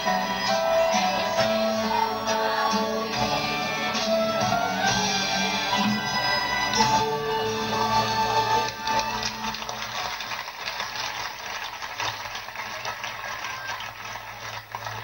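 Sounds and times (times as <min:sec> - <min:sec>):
children's choir singing: 0:00.0 - 0:09.3
band of guitars violins and piano: 0:00.0 - 0:09.8
audience applause: 0:05.9 - 0:15.0.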